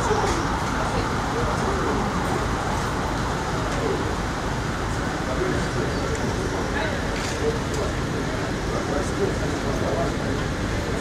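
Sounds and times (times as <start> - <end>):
convoy vehicles: 0.0 - 11.0.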